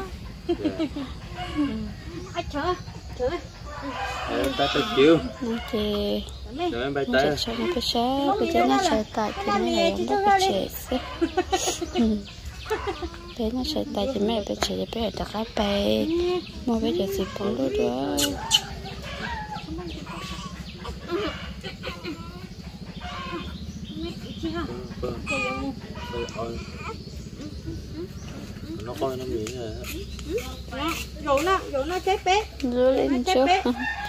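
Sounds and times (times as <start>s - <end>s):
chickens clucking: 0.0s - 34.0s
people's voices: 0.0s - 34.0s
steady low hum: 0.0s - 34.0s
rooster crowing: 3.6s - 5.9s, 17.2s - 20.5s, 33.4s - 34.0s.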